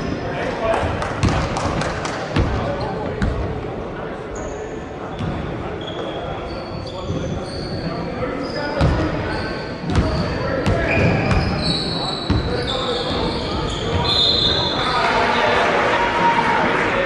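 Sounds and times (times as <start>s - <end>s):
voices chattering: 2.2s - 17.0s.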